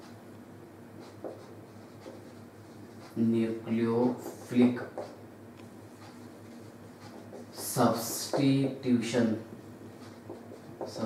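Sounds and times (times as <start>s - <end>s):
low steady hum: 0.0s - 11.0s
marker pen on whiteboard: 0.9s - 11.0s.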